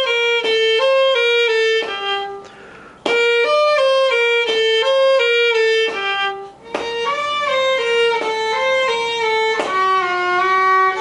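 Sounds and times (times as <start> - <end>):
solo violin melody: 0.0 - 11.0.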